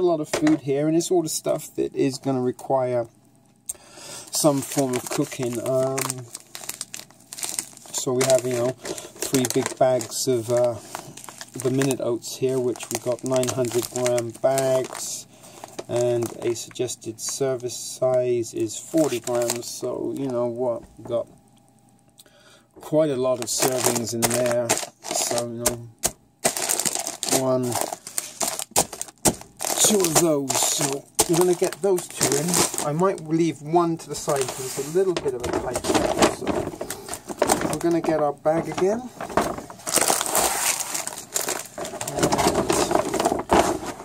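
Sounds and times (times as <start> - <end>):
plastic bag crinkling: 4.2 - 21.2, 22.8 - 44.0.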